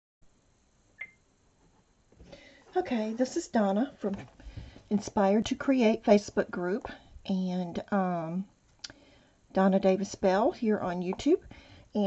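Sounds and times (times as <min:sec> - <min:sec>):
faint room hiss: 0:00.2 - 0:12.0.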